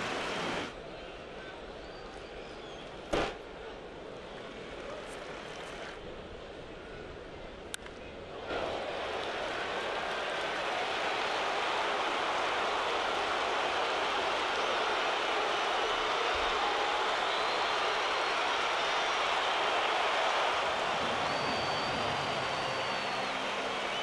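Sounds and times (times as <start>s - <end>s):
stadium crowd cheering: 8.3s - 24.0s
whistles: 15.7s - 24.0s.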